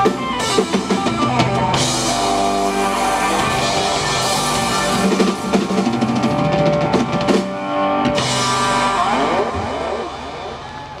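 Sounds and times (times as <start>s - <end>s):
electric guitar chord ringing: 0.0s - 10.6s.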